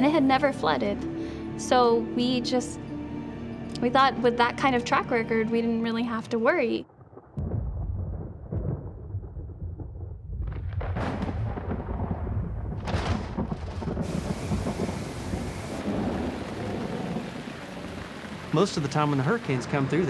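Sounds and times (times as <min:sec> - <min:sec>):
thunder: 0:06.8 - 0:20.0
wind rumble: 0:06.8 - 0:20.0
heavy rain hiss: 0:14.0 - 0:20.0.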